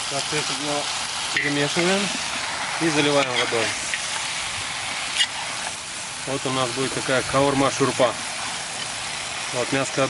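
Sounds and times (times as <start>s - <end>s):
meat sizzling in a pot: 0.0s - 10.0s.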